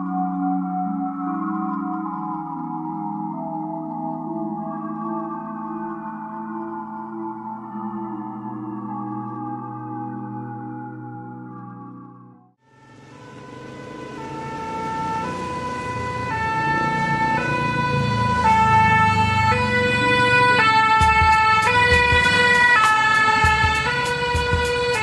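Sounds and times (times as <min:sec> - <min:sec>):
two-tone fire engine siren: 0:00.0 - 0:25.0
steady beat of sharp hits: 0:19.4 - 0:25.0.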